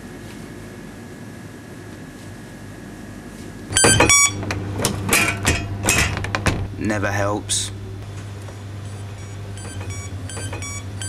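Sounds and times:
low hum: 3.7s - 11.0s.

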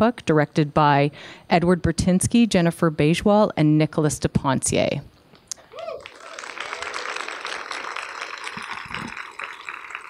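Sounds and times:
audience applauding: 5.8s - 10.0s.

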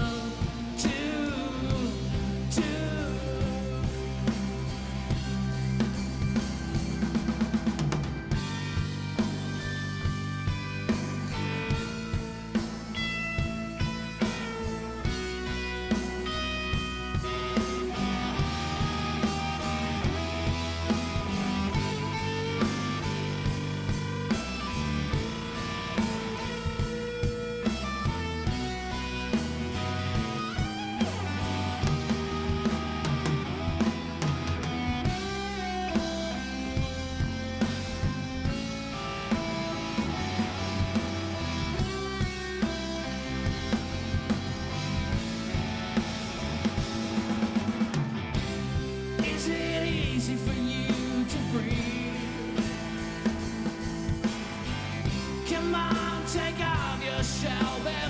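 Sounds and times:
bass guitar: 0.0s - 58.0s
drum kit beat: 0.0s - 58.0s
electric guitar: 0.0s - 58.0s
keyboards: 0.0s - 58.0s.

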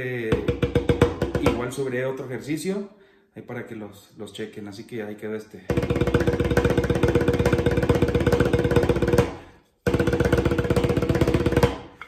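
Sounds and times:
snare drum roll: 5.7s - 11.9s.

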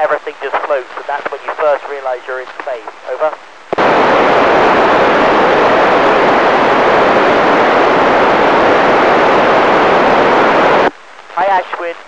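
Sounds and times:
radio static hiss: 0.0s - 12.0s.

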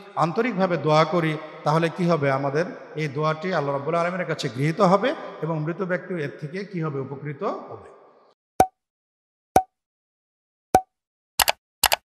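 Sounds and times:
paired clicks: 11.4s - 12.0s.

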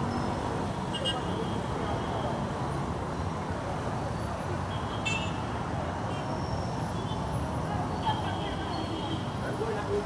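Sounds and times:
motorcycles and cars humming: 0.0s - 10.0s.

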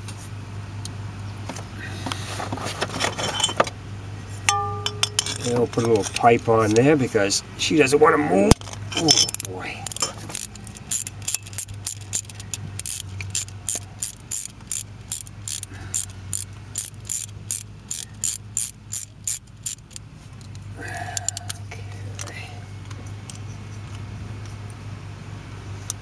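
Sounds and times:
socket ratchet clicking: 9.3s - 20.6s.

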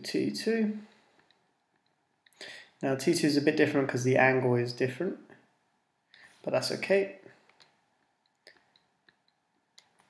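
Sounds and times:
person speaking: 0.0s - 1.0s, 2.3s - 5.3s, 6.3s - 7.4s.

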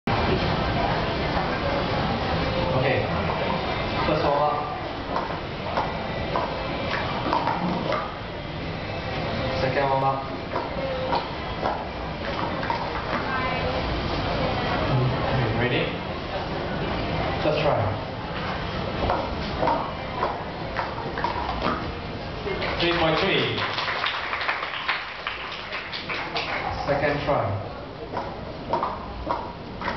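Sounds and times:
voices talking in a hall: 0.1s - 29.9s.

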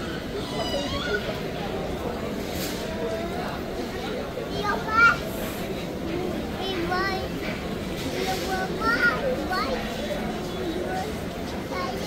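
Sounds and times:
people chattering: 0.0s - 12.0s
toddler calling: 0.1s - 1.4s.

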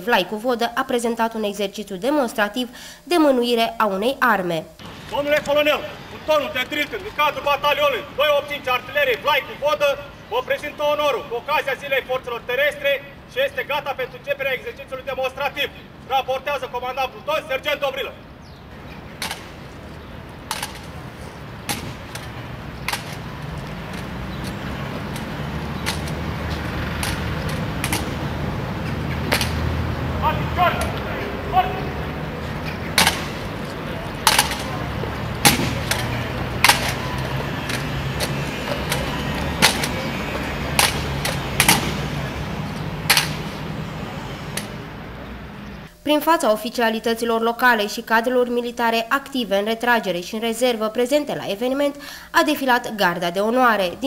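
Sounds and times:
outdoor crowd noise: 4.7s - 46.1s
rifle butts striking ground: 18.9s - 31.0s, 32.6s - 43.8s
hands slapping rifles: 21.7s - 28.3s, 29.2s - 29.7s, 32.9s - 34.8s, 35.4s - 42.1s, 42.8s - 43.7s.

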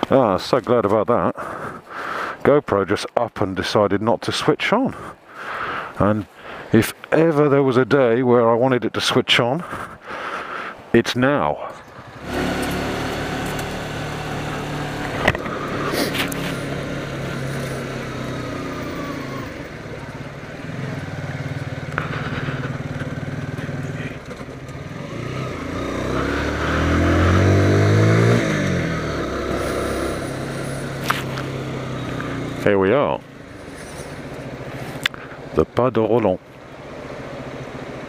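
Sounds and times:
motorcycle engine accelerating: 11.9s - 35.5s.

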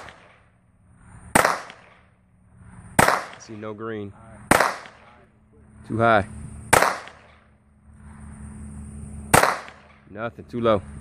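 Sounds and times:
handgun shot: 1.4s - 2.0s, 3.0s - 3.5s, 4.5s - 5.0s, 6.7s - 7.4s, 9.3s - 10.0s.

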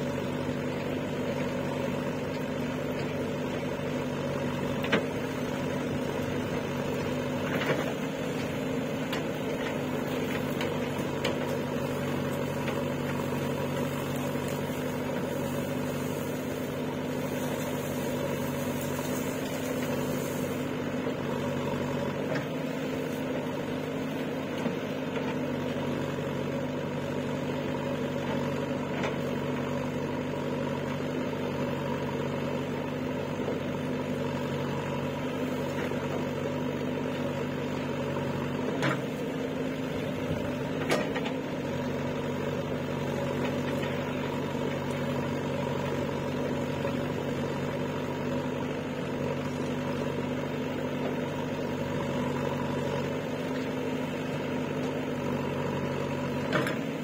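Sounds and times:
diesel engine running steadily: 0.0s - 57.0s.

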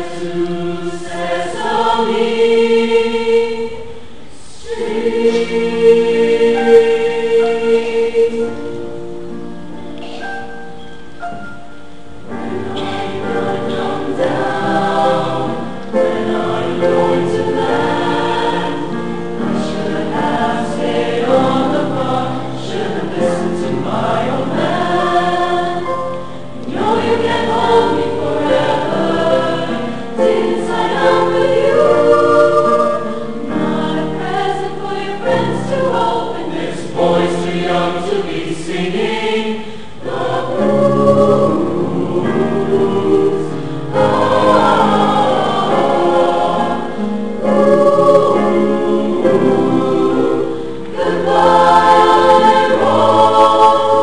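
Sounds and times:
youth choir singing in harmony: 0.0s - 54.0s.

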